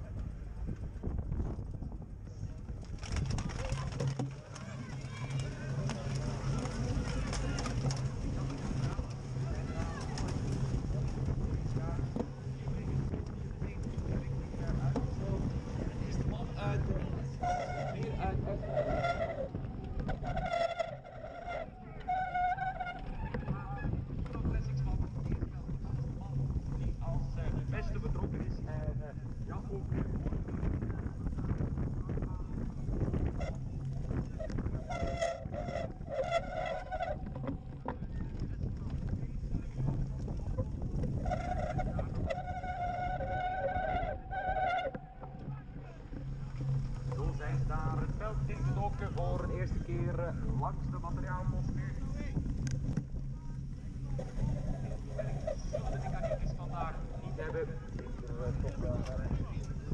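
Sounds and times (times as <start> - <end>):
bicycle tyres rolling: 0.0 - 59.9
bike rumble over grass: 0.0 - 59.9
wind noise: 0.0 - 59.9
bicycle brakes squealing: 17.4 - 19.6, 34.9 - 37.2, 41.3 - 44.9.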